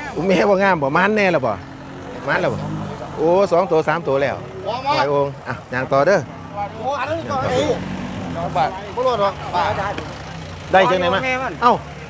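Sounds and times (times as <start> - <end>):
people talking: 0.0 - 11.9.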